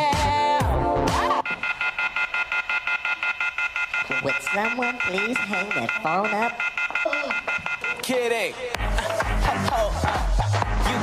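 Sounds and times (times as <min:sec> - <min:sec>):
electronic telephone ring: 0:01.4 - 0:08.2
hip-hop dance track: 0:08.0 - 0:11.0.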